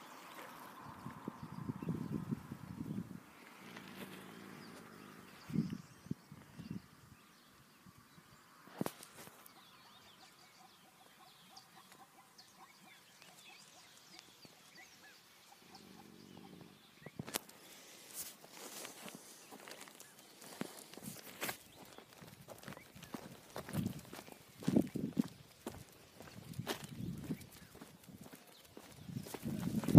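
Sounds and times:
footsteps on grass: 0:17.8 - 0:29.9.

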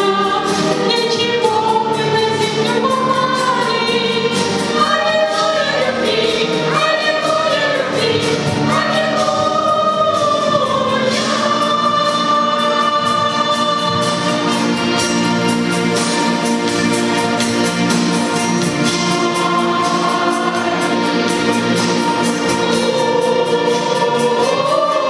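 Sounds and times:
woman singing into a microphone: 0:00.0 - 0:04.4
mixed choir singing: 0:00.0 - 0:25.0.

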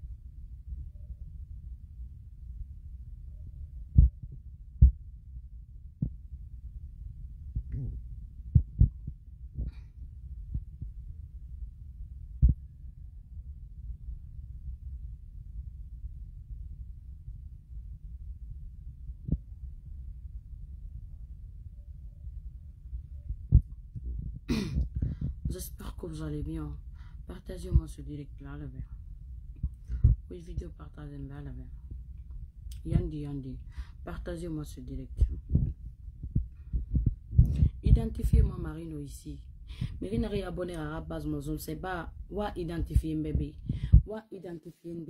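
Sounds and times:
steady low rumble: 0:00.0 - 0:44.2.

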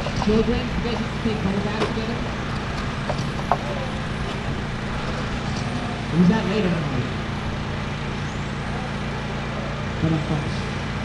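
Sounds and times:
outdoor low rumble: 0:00.0 - 0:11.0.

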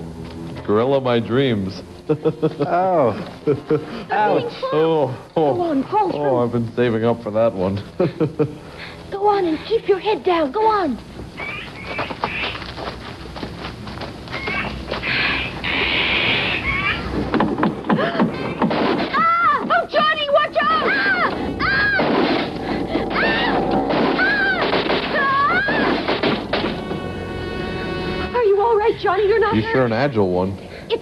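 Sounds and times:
buzzing tone: 0:20.8 - 0:28.4.

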